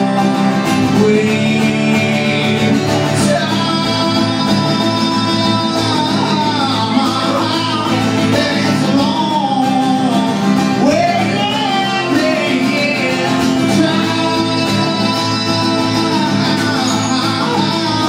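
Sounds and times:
acoustic guitar strumming: 0.0 - 18.0
man singing: 0.0 - 18.0.

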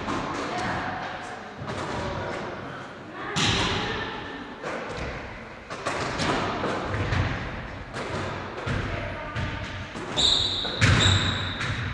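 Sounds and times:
basketballs bouncing on wooden floor: 8.0 - 11.9.

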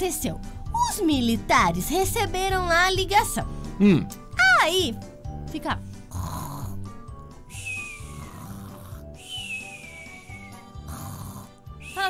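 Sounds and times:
background music: 0.0 - 12.0
cartoon snoring whistles: 6.1 - 12.0.

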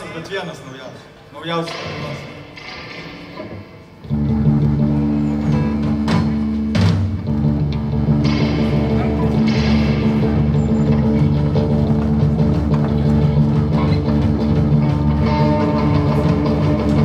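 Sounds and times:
rock band playing: 3.5 - 17.0.

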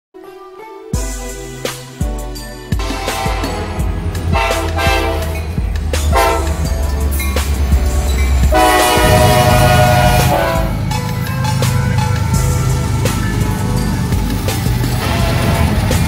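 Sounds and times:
low rumble of passing train: 2.4 - 16.0
locomotive air horn blasts: 2.8 - 6.8, 8.5 - 10.9, 15.0 - 16.0.

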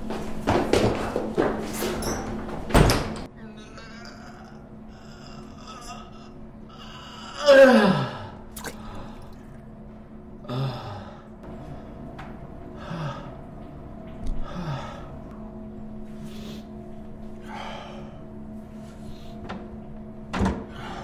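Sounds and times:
man breathing heavily: 10.4 - 12.1, 12.7 - 13.6, 14.3 - 15.5, 16.1 - 19.5, 20.7 - 21.0.

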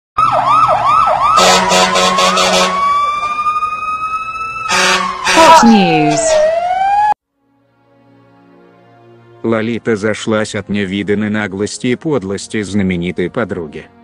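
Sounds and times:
fast warbling siren: 0.2 - 7.2.

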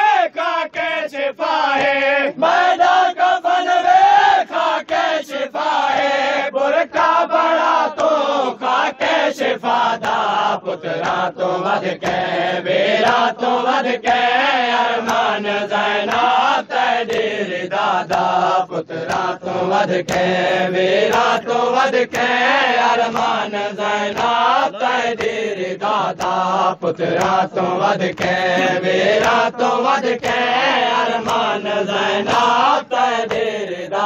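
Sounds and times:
rhythmic chest-beating: 0.0 - 34.0
voices chanting a lament: 0.0 - 34.0.

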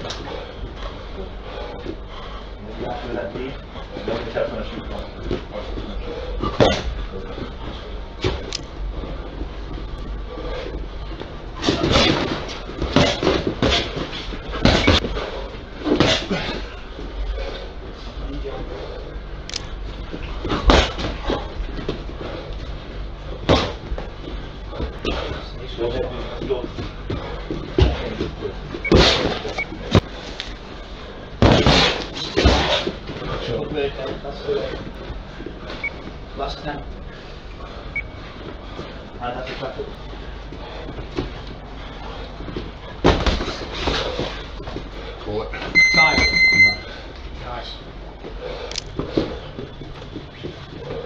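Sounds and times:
low hum of gym: 0.0 - 51.0.

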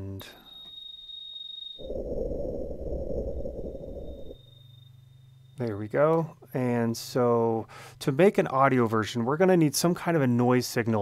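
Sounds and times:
faint high steady tone: 0.0 - 8.4
low rushing synthesized noise: 1.8 - 4.5
low steady hum: 1.8 - 8.2.

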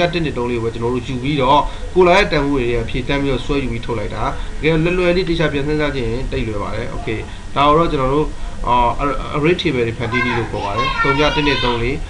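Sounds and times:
low steady hum: 0.0 - 12.0
person talking: 0.0 - 12.0.

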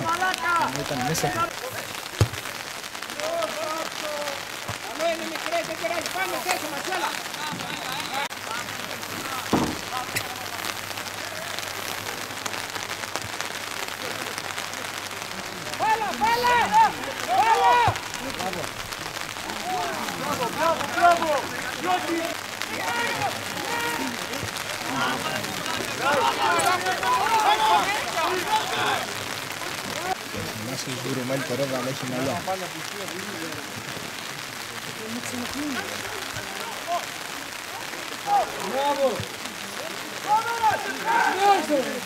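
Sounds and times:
steady rain falling: 0.0 - 42.0
men shouting: 15.8 - 18.7, 19.4 - 30.2, 40.3 - 42.0.

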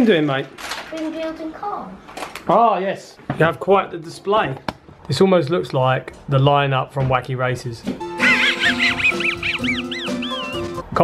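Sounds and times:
cartoon background music: 8.0 - 10.9
cartoon dog wheezing snicker: 8.2 - 10.8.

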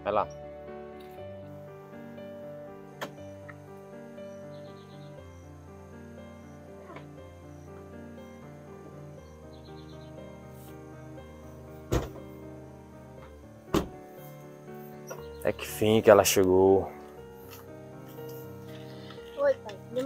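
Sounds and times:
soft background music: 0.0 - 20.0
car doors slamming: 11.9 - 12.2, 13.7 - 14.0.

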